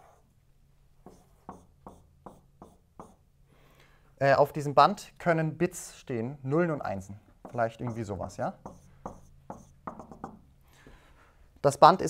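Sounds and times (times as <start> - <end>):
marker writing on whiteboard: 1.0 - 3.3, 7.4 - 10.5.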